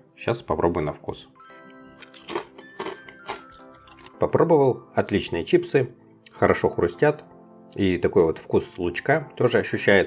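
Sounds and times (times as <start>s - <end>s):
quiet background music: 0.0s - 10.0s
potato chips crunching: 1.7s - 4.4s.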